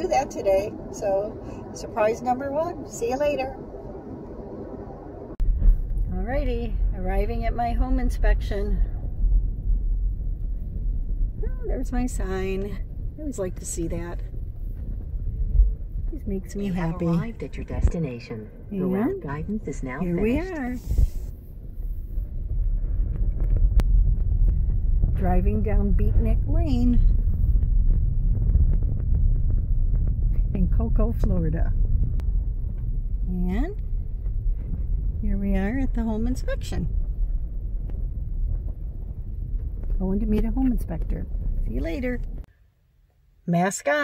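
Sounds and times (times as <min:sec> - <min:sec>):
wind noise on microphone: 0:00.0 - 0:42.5
car road and engine rumble: 0:00.0 - 0:44.0.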